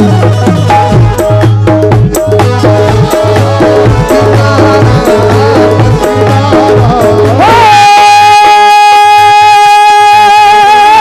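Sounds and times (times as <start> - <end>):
hand drum beat: 0.0 - 9.2
long held high vocal note: 2.5 - 11.0.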